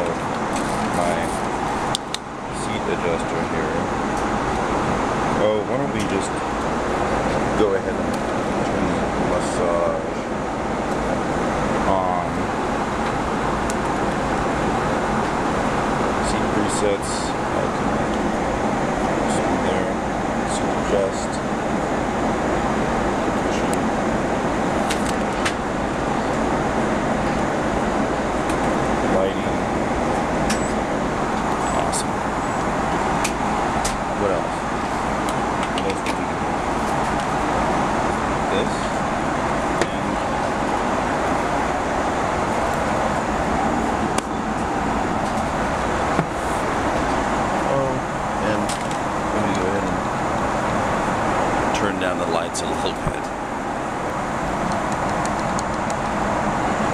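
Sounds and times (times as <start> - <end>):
airliner cabin noise: 0.0 - 56.9.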